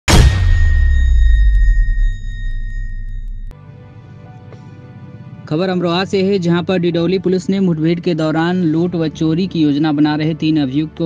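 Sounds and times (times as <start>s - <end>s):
deep low rumble: 0.1s - 3.5s
high ringing tone: 0.1s - 3.6s
soft background music: 3.5s - 11.0s.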